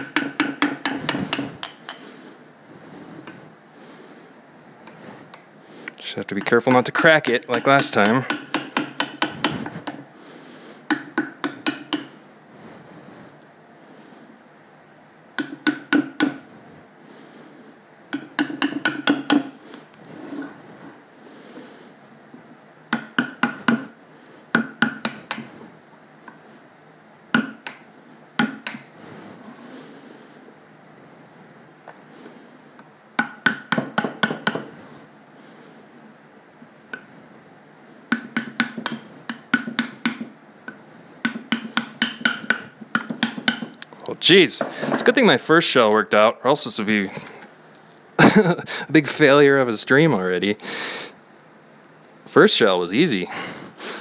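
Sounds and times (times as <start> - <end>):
hammer tapping metal tool: 0.0 - 2.0, 6.4 - 10.0, 10.9 - 12.2, 15.4 - 16.4, 18.1 - 19.5, 22.9 - 23.9, 24.5 - 25.5, 27.4 - 27.8, 28.4 - 28.9, 33.2 - 34.7, 38.1 - 43.9.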